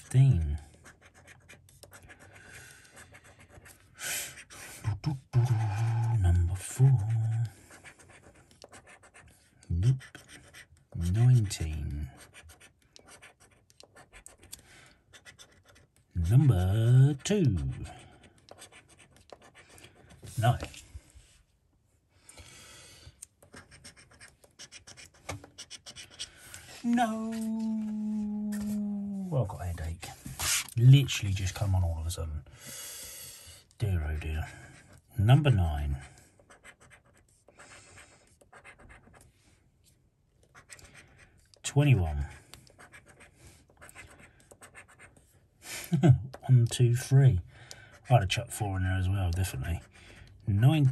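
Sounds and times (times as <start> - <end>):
coin scratching scratchcard: 23.5 - 26.2, 38.5 - 39.1.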